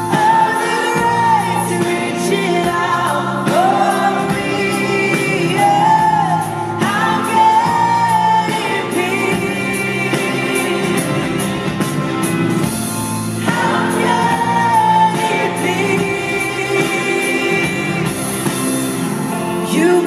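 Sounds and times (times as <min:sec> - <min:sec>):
woman singing: 0:00.0 - 0:11.2, 0:13.5 - 0:18.5, 0:19.6 - 0:20.0
band accompaniment: 0:00.0 - 0:20.0.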